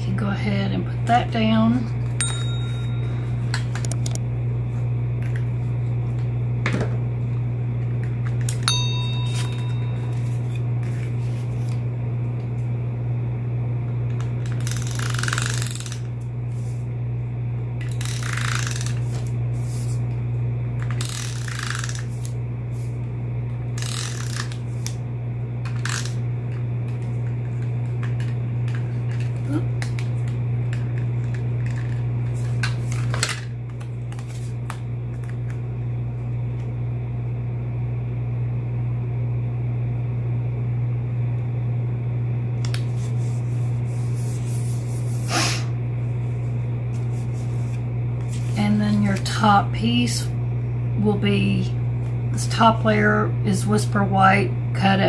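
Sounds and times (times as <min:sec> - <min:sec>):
steady low hum: 0:00.0 - 0:55.0
tape dispenser ratcheting rasp: 0:14.5 - 0:16.0, 0:17.8 - 0:19.0, 0:20.9 - 0:22.3, 0:23.8 - 0:24.6.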